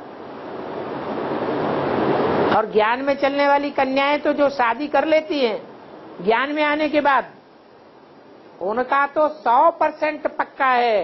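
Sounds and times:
rushing background hiss: 0.0s - 11.0s.

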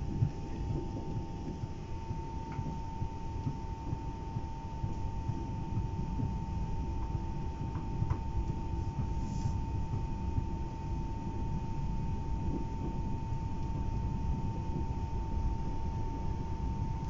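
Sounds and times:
constant high hum: 0.0s - 17.0s.

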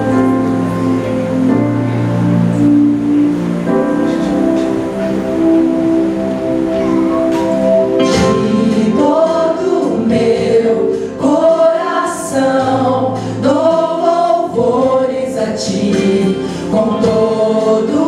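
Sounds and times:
live accompaniment: 0.0s - 18.0s
women singing in harmony: 8.0s - 18.0s.

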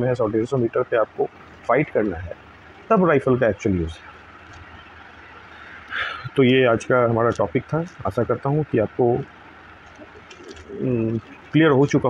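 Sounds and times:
man speaking: 0.0s - 4.0s, 6.0s - 9.3s, 10.6s - 12.0s.

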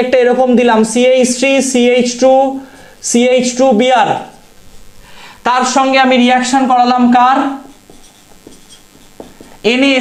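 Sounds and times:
man talking: 0.0s - 4.4s
marker pen on whiteboard: 1.4s - 5.0s, 5.6s - 10.0s.

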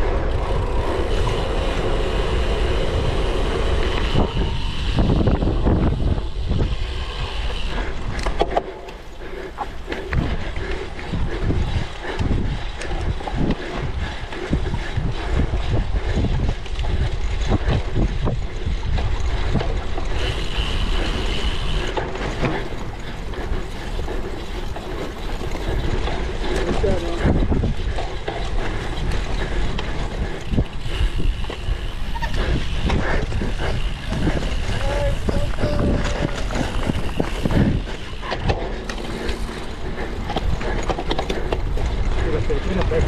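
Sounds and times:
bike rattling and knocking: 0.0s - 43.0s
wind buffeting microphone: 0.0s - 43.0s.

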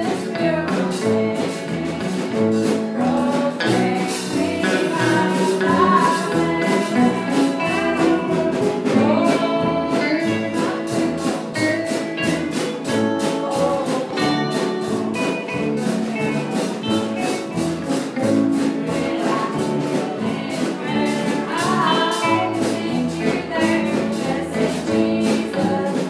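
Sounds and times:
woman singing gospel: 0.0s - 11.6s, 12.2s - 15.4s, 18.8s - 26.0s
music with beat and guitar: 0.0s - 26.0s.

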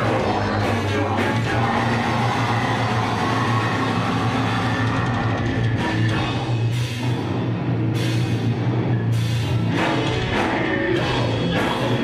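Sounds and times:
heavy rock band playing live: 0.0s - 12.0s.

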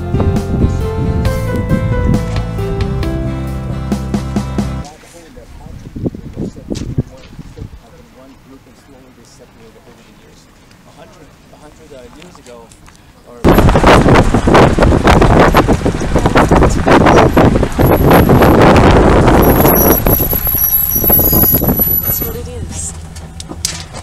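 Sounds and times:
wind and road noise in vehicle: 0.0s - 3.1s, 4.8s - 24.0s.

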